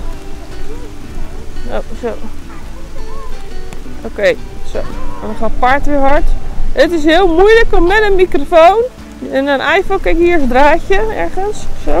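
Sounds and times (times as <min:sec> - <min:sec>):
faint voices: 0:00.0 - 0:12.0
wind rumbling on microphone: 0:00.0 - 0:12.0.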